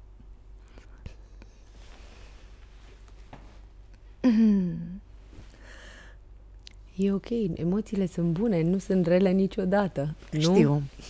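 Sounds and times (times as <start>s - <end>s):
low steady hum: 0.0s - 11.0s
woman breathing softly: 5.4s - 6.3s.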